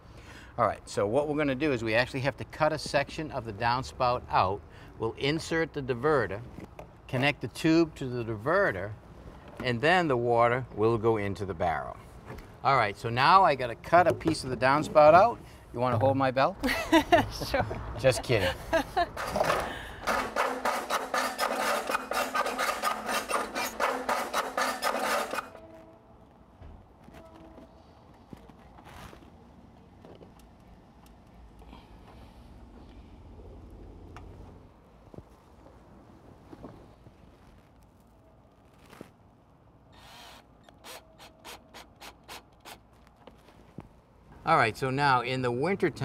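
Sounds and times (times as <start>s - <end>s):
cordless drill driving screws: 19.2s - 25.6s, 40.0s - 42.8s
hacksaw cutting metal pipe: 19.2s - 25.6s.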